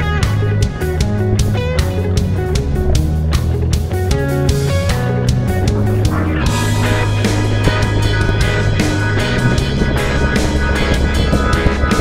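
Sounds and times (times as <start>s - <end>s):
guitar-led rock music: 0.0s - 12.0s.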